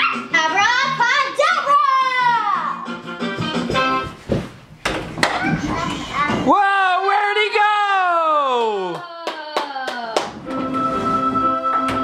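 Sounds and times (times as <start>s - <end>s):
child talking: 0.3s - 2.8s, 5.3s - 6.5s.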